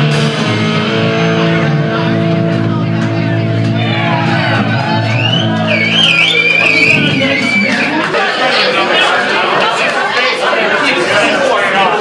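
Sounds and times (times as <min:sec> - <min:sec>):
rock band holding a loud chord: 0:00.0 - 0:08.4.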